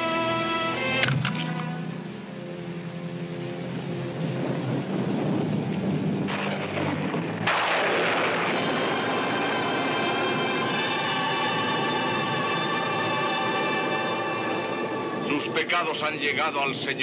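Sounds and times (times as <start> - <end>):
dramatic orchestral music: 0.0 - 17.0
rumbling blast: 4.7 - 12.4
loud crash: 6.3 - 9.6.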